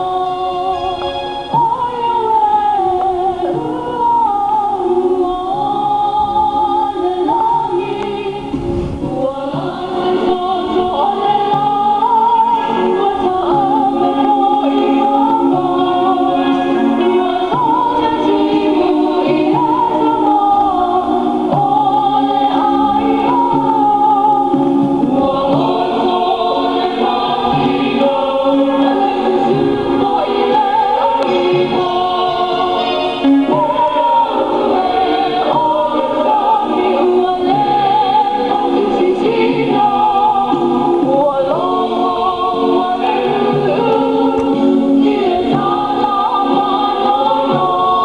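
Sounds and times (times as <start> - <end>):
group of voices singing: 0.0 - 48.0.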